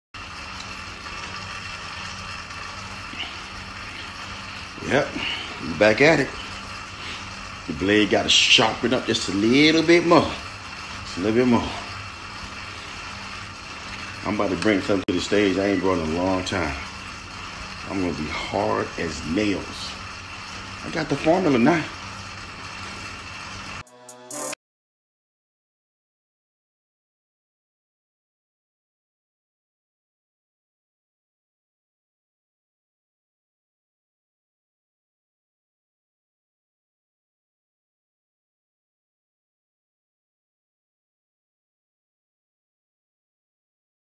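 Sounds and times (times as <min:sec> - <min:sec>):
low room hum: 0:00.2 - 0:23.8.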